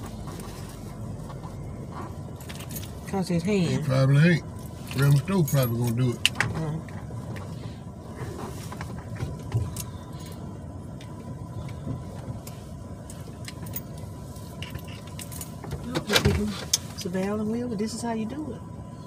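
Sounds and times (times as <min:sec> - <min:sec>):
road and engine noise in car cabin: 0:00.0 - 0:19.0
light clicks and rattles: 0:08.2 - 0:17.2.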